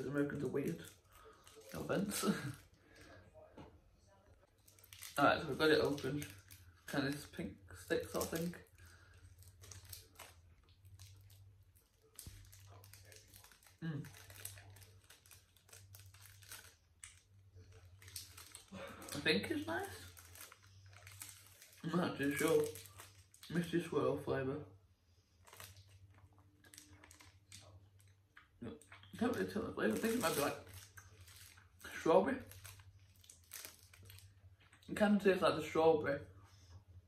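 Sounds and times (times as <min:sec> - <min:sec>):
plastic wrapper crinkling: 0:00.0 - 0:03.2, 0:04.4 - 0:23.9, 0:25.3 - 0:28.2, 0:28.8 - 0:34.9
low steady hum: 0:00.0 - 0:37.0.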